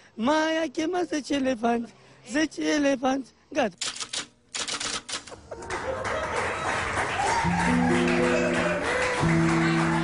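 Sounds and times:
rapid sharp clicks: 3.8s - 5.4s.

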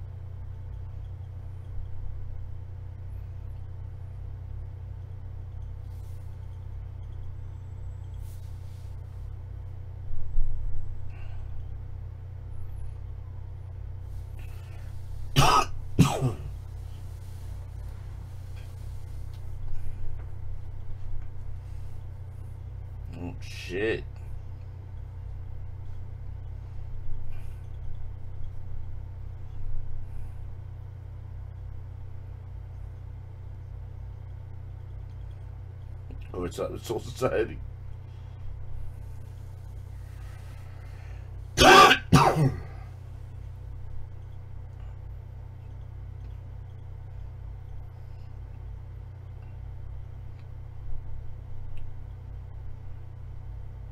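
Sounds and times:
man coughing: 15.4s - 16.6s, 41.6s - 42.9s.

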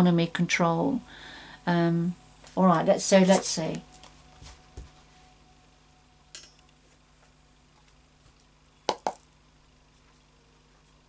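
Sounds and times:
small objects tapping on a table: 8.9s - 9.3s.

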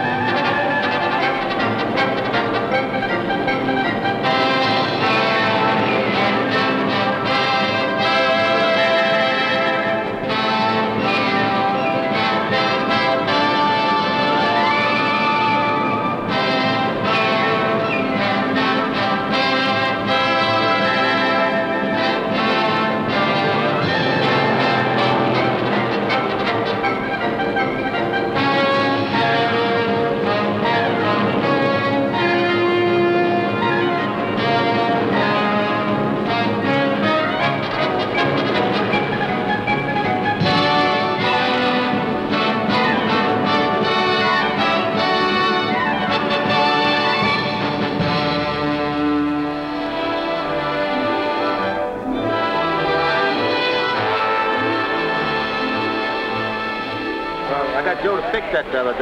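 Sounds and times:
orchestral music with brass: 0.0s - 59.0s.

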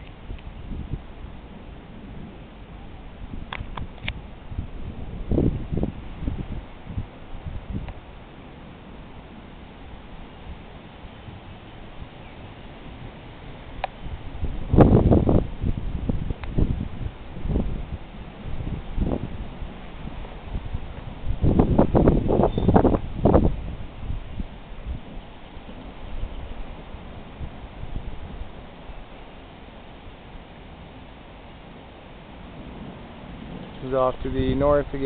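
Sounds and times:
gusty wind buffeting microphone: 0.0s - 35.0s.

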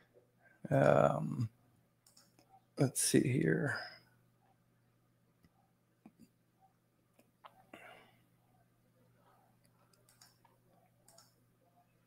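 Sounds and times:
faint clicks: 2.0s - 2.5s, 9.2s - 11.4s
soft breathy sound: 7.5s - 8.6s.

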